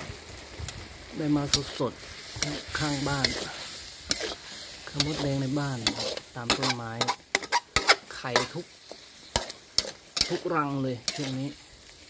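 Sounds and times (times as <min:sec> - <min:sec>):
food sizzling in a pan: 0:00.0 - 0:12.0
metal spatula scraping a wok: 0:01.5 - 0:11.7.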